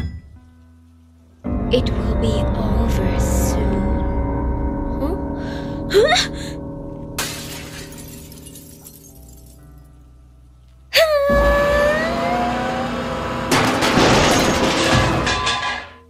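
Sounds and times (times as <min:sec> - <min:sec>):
background music: 0:00.0 - 0:16.0
glass shattering: 0:07.2 - 0:09.6, 0:13.5 - 0:16.0.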